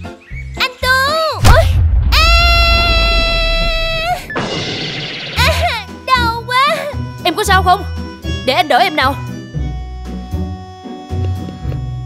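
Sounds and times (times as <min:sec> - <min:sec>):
low rumble: 0:01.4 - 0:04.4.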